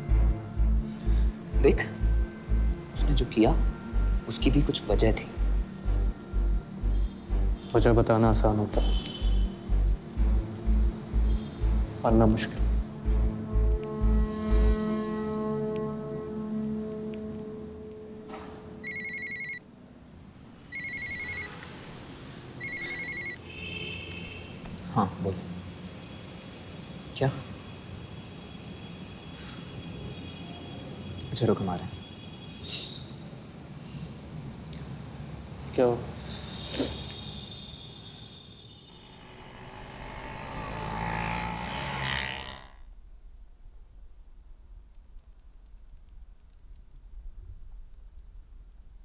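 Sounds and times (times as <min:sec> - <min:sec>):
crickets chirping: 0:00.0 - 0:49.0
mobile phone trilling ringtone: 0:18.8 - 0:19.6, 0:20.7 - 0:21.6, 0:22.6 - 0:23.4
rushing swell of noise: 0:38.9 - 0:42.7.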